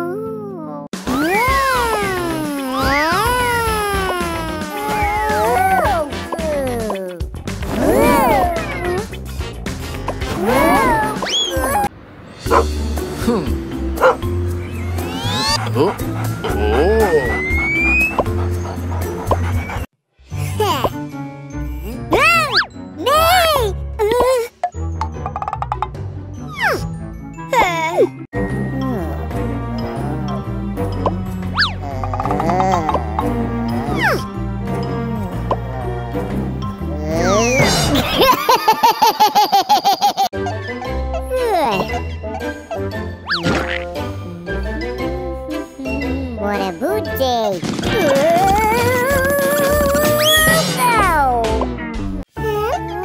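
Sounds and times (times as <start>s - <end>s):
cat-like cartoon vocal: 0.0s - 9.2s, 10.3s - 11.9s, 15.2s - 18.1s, 31.6s - 34.3s, 36.9s - 38.0s, 47.9s - 51.4s
background music: 0.0s - 53.0s.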